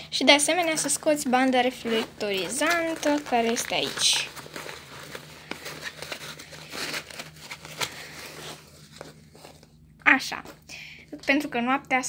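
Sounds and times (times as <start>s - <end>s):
backpack fabric rustling: 1.7s - 9.7s.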